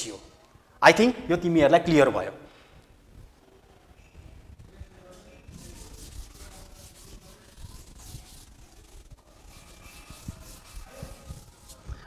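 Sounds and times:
scratchy rubbing on board: 4.6 - 12.0.

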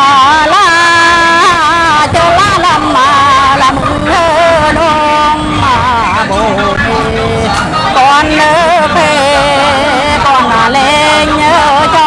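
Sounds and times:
person singing folk song: 0.0 - 12.0.

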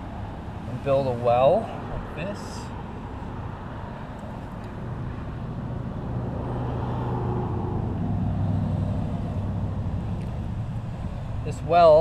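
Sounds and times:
vehicle engine passing by: 4.9 - 11.5.

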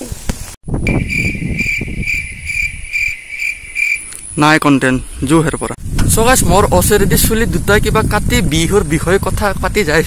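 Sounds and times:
cricket chirping: 0.9 - 5.8.

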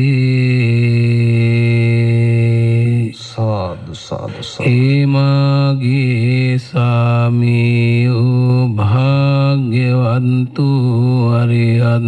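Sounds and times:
monk chanting: 0.0 - 12.0.

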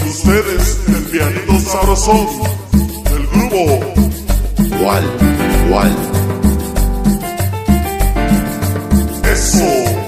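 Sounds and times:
latin dance band music: 0.0 - 10.0
scraped percussion rhythm: 0.0 - 10.0.

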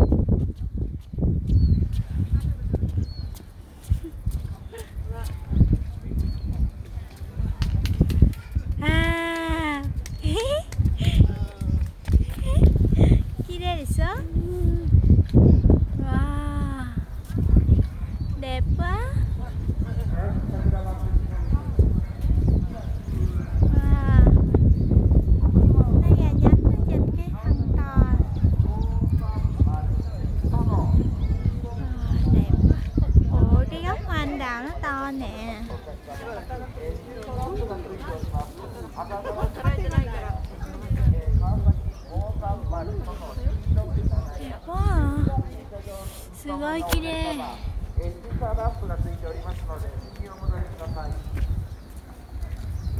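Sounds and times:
footsteps on paved path: 0.0 - 52.9
faint voices of passers-by: 1.7 - 52.9
people talking: 4.0 - 15.0, 16.0 - 22.0, 22.6 - 24.4, 25.7 - 51.2.

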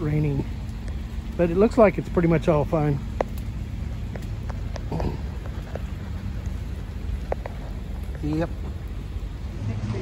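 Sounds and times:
drops ticking on wet surfaces: 0.0 - 9.9
light rain falling: 0.0 - 10.0
steady low rumble: 0.0 - 10.0.

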